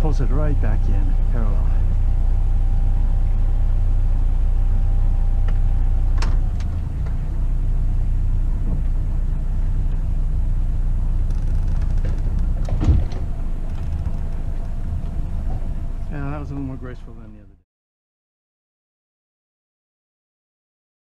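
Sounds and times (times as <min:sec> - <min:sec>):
boat engine running: 0:00.0 - 0:17.6.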